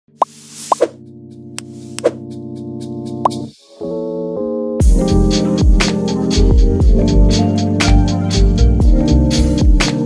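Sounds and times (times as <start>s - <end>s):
rising plop sound effects: 0.2s - 0.9s.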